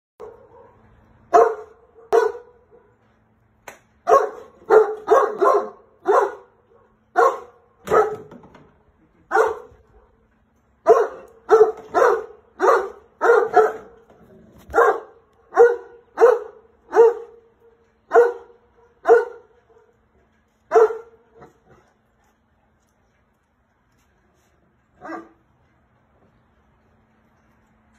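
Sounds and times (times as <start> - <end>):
dog barking: 0.2 - 2.9, 4.1 - 8.3, 9.3 - 9.7, 10.9 - 14.0, 14.7 - 17.4, 18.1 - 19.5, 20.7 - 21.2.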